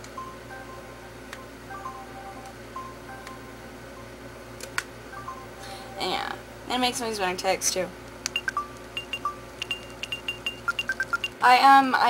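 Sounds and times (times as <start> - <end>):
phone keypad beeping: 8.3 - 11.4.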